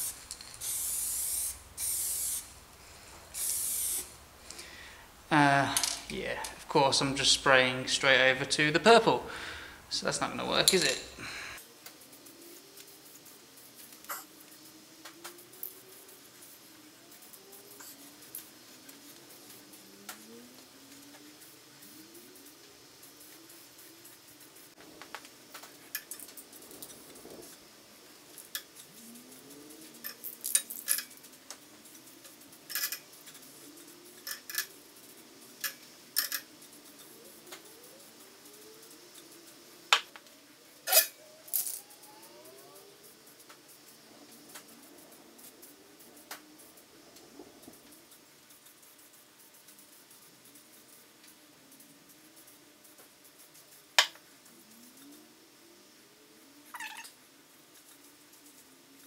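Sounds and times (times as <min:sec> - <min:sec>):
spray can clicks and rattles: 0:00.0 - 0:02.5, 0:03.3 - 0:04.6, 0:28.3 - 0:34.8
spray paint can spraying: 0:00.0 - 0:02.6, 0:03.3 - 0:04.6, 0:11.8 - 0:40.2.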